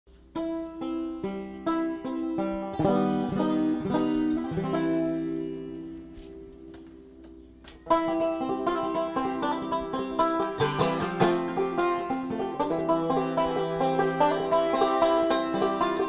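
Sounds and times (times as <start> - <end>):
banjo picking: 0.1 - 16.0.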